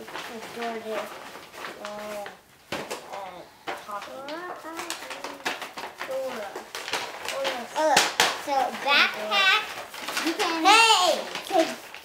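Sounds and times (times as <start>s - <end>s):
soft talking voices: 0.0s - 11.9s
plastic packaging crackling: 0.0s - 12.0s.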